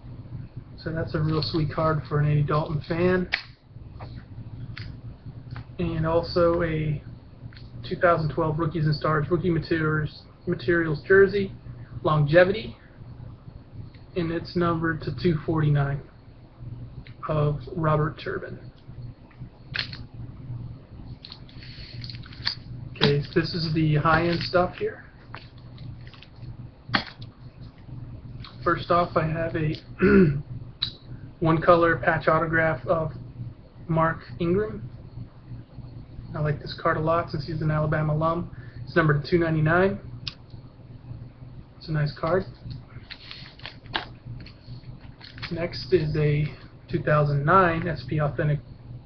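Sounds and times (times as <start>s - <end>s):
faint low hum: 0.0s - 49.0s
cards in plastic holders rustling: 43.0s - 45.6s.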